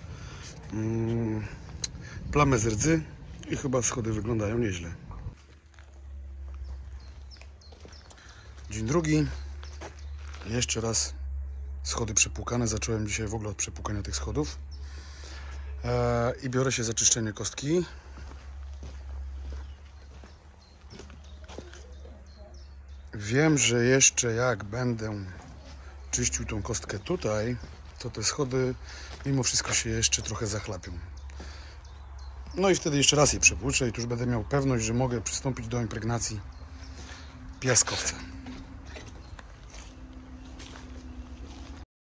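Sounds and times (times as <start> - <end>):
man's drawn-out hesitation sound: 0.0 - 5.3
low steady hum: 0.0 - 41.8
footsteps on cobblestones: 5.3 - 10.5, 18.1 - 22.2, 25.2 - 32.6, 36.4 - 41.8.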